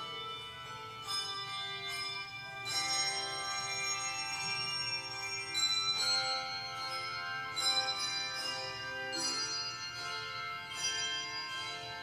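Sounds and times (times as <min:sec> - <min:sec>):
handbell chords ringing: 0:00.0 - 0:12.0.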